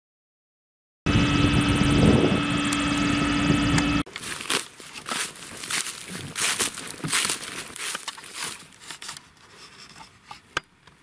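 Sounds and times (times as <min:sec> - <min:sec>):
forage harvester droning: 0:01.1 - 0:10.0
footsteps crunching through dry straw: 0:04.1 - 0:09.7.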